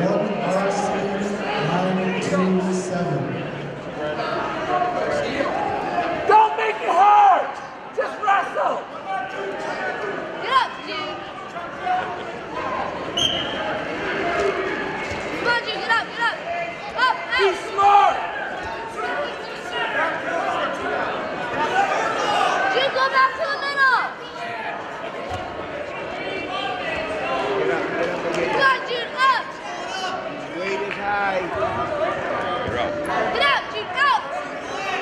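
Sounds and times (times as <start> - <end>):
voices echoing in gymnasium: 0.0 - 35.0.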